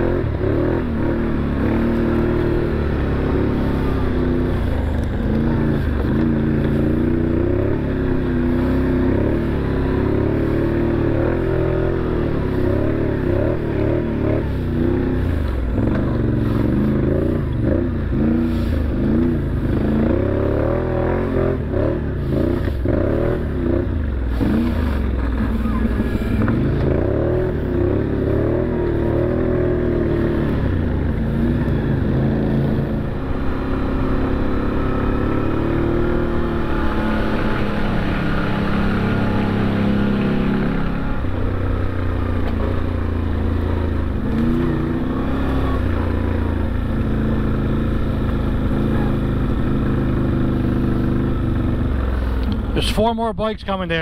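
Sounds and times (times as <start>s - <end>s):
off-road vehicle engine revving: 0.0s - 54.0s.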